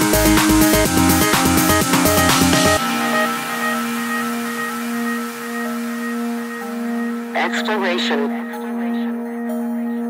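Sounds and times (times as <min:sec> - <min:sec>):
sustained synth pad: 0:00.7 - 0:10.0.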